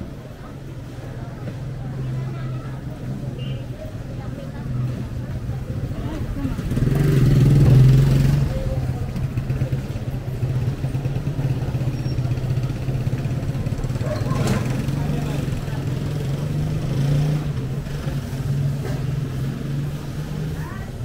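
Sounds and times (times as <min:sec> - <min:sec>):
street noise: 0:00.0 - 0:21.0
voices: 0:00.0 - 0:21.0
motorcycle engine running: 0:04.9 - 0:21.0.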